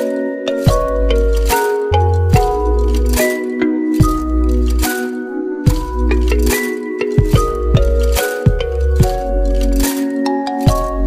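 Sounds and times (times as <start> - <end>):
electronic music: 0.0 - 11.0.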